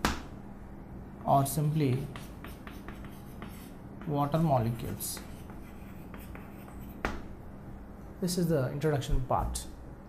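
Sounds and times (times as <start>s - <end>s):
chalk writing on a chalkboard: 1.2s - 7.2s.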